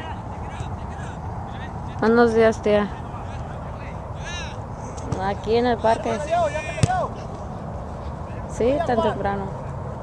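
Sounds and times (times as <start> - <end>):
voices: 0.0 - 9.8
outdoor noise: 0.0 - 10.0.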